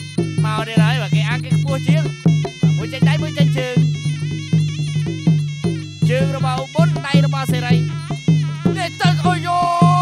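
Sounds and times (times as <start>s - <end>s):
reed oboe gliding phrases: 0.0s - 10.0s
steady drum beat: 0.0s - 10.0s.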